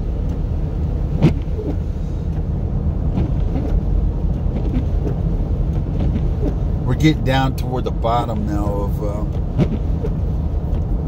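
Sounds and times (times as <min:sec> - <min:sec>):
tyres and engine rumbling: 0:00.0 - 0:11.0.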